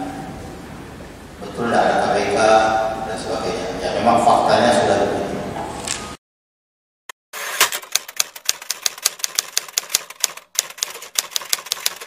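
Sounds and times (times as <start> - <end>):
typewriter key clicks: 7.6 - 12.0.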